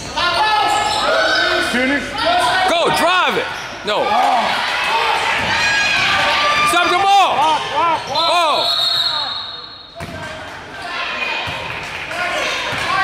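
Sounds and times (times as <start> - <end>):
loud shouting: 0.1 - 9.6
referee's whistle blast: 8.4 - 10.0.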